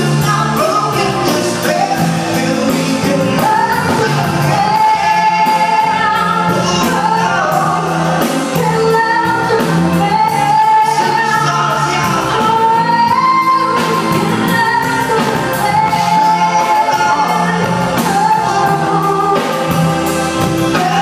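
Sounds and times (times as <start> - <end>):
electric guitar and band backing: 0.0 - 21.0
man and woman singing together: 0.0 - 21.0.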